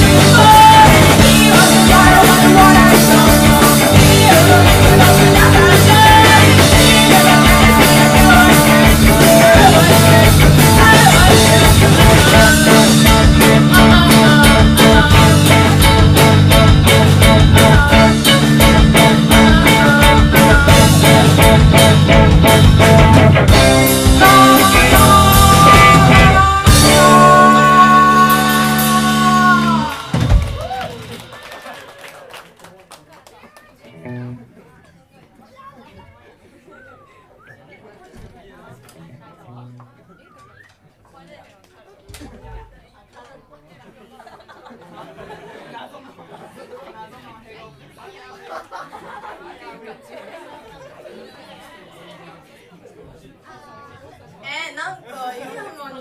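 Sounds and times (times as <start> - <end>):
rock band guitar chord: 0.0 - 30.6
audience cheering: 27.2 - 33.8
audience clapping: 28.5 - 34.1
chatter of people talking: 30.6 - 56.0.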